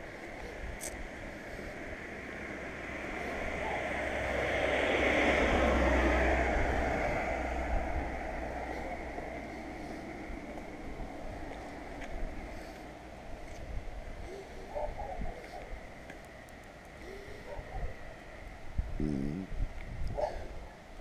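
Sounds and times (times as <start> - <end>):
car passing by: 1.4 - 13.0.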